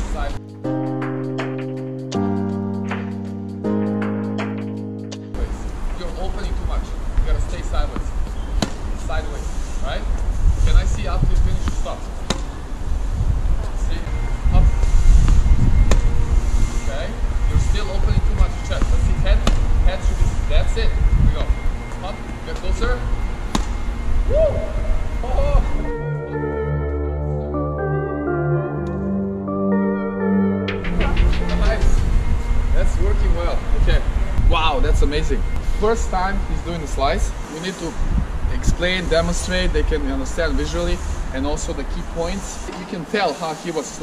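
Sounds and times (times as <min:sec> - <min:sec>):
wind rumble on microphone: 0:06.2 - 0:25.8, 0:31.1 - 0:39.9
tennis balls hit by rackets: 0:07.8 - 0:09.0, 0:11.6 - 0:12.6, 0:18.8 - 0:19.7, 0:23.5 - 0:23.8.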